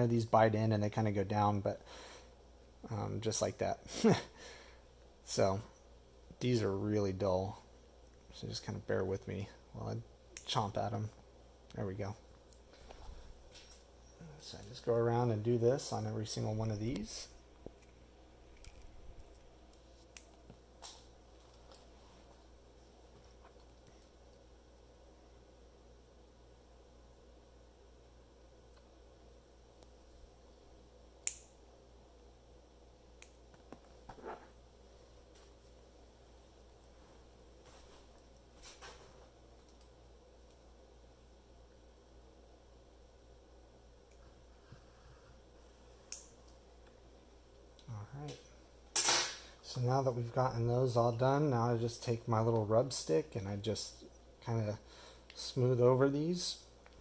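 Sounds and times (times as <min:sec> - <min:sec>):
clippers snipping with sharp clicks: 0:31.2 - 0:31.5.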